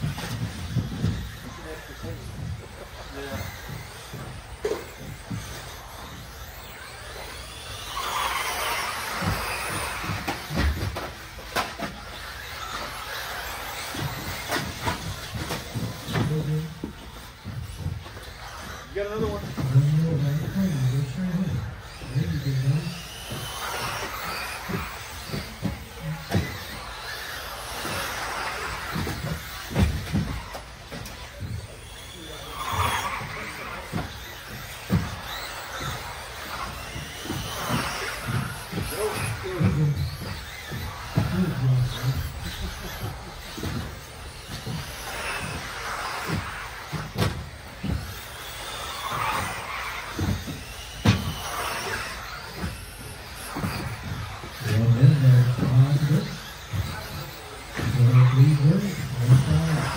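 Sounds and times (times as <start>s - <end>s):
electric motors whining: 0.0s - 59.9s.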